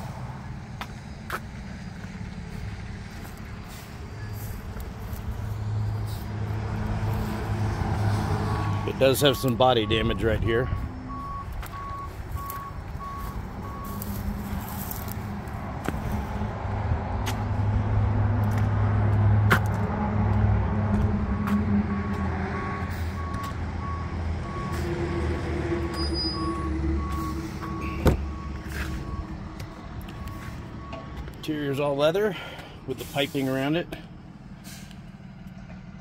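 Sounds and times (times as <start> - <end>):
heavy vehicle engine rumble: 0.0 - 36.0
reversing alarm beeping: 8.6 - 14.1, 21.3 - 31.2.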